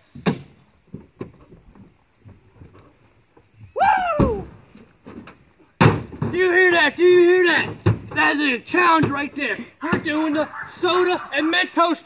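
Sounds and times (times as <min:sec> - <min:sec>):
man whooping: 0:03.8 - 0:04.6.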